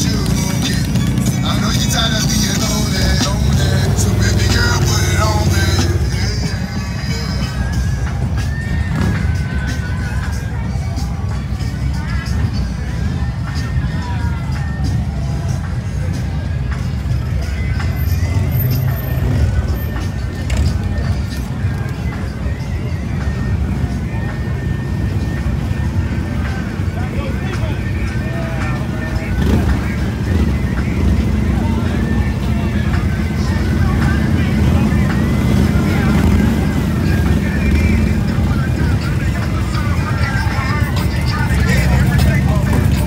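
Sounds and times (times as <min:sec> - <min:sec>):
motorcycle engines riding past: 0:00.0 - 0:24.4, 0:25.2 - 0:43.0
crowd chatter: 0:00.0 - 0:43.0
music: 0:00.0 - 0:43.0.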